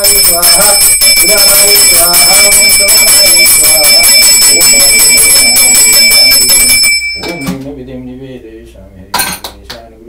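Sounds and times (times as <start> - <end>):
man chanting: 0.0 - 5.7
hand bell ringing rapidly: 0.0 - 7.5.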